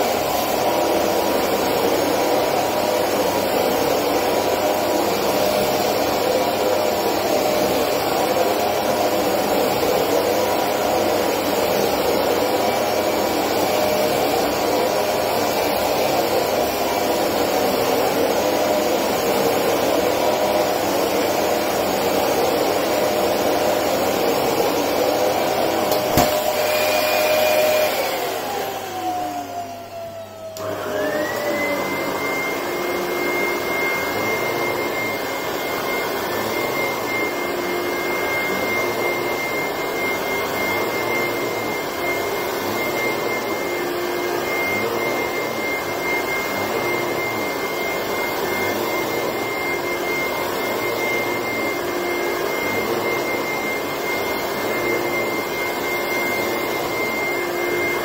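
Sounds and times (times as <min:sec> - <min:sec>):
vacuum cleaner running: 0:00.0 - 0:58.0
vacuum motor high whine: 0:00.0 - 0:58.0.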